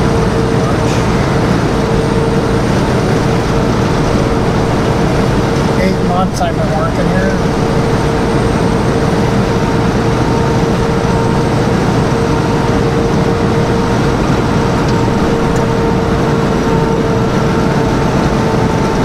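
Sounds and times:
truck engine and road noise: 0.0 - 19.0.

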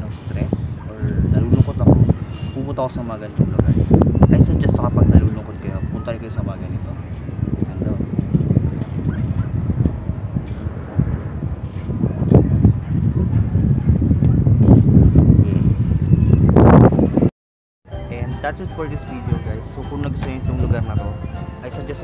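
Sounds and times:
wind buffeting microphone: 0.0 - 17.3, 19.2 - 22.0.

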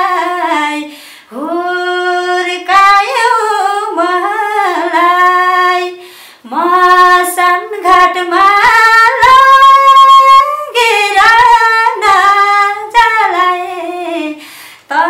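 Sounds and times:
woman singing unaccompanied: 0.0 - 15.0
woman breathing in: 0.9 - 1.3, 6.0 - 6.5, 14.4 - 14.9.

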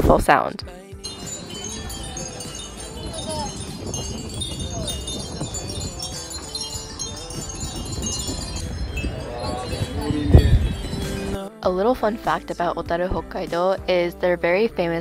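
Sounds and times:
glass wind chimes tinkling: 1.0 - 11.4.

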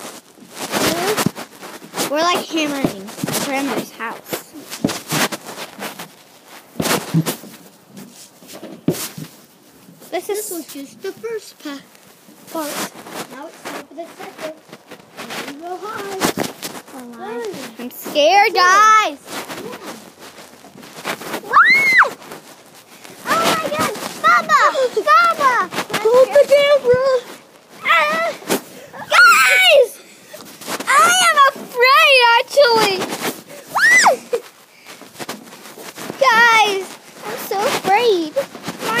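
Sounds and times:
camera handling bumps and rustling: 0.0 - 29.1, 30.3 - 39.0
child screaming: 21.4 - 22.2, 27.8 - 28.4, 29.0 - 30.0, 30.9 - 31.7, 33.6 - 34.4.

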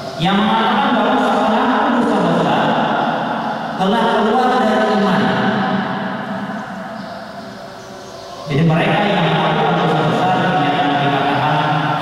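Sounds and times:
man chanting: 8.4 - 12.0.

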